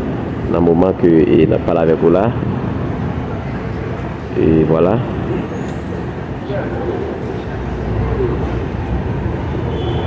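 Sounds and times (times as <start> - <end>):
low rumble of road traffic: 0.0 - 10.0
faint scattered sounds: 0.1 - 10.0.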